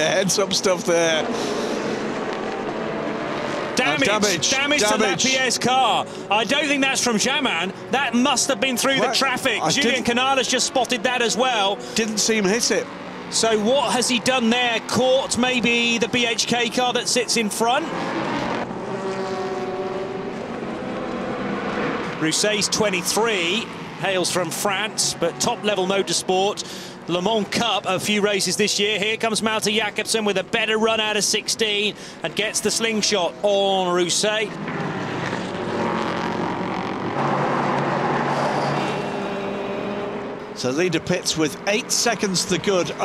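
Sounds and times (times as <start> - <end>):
race car engines at speed: 0.0 - 43.0.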